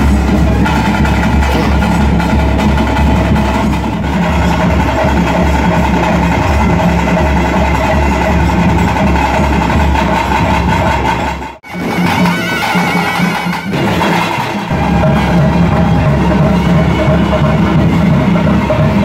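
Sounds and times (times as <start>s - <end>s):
wind instrument melody: 0.0s - 3.2s, 3.9s - 19.0s
drumming on double-headed drums: 0.0s - 19.0s.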